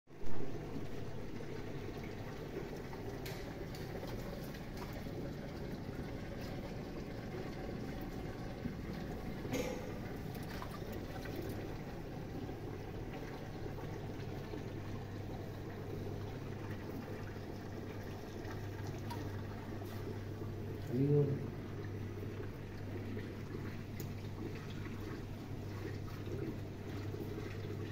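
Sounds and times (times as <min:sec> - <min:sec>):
low even hum: 0:00.1 - 0:27.9
water trickling into tank: 0:00.1 - 0:27.9.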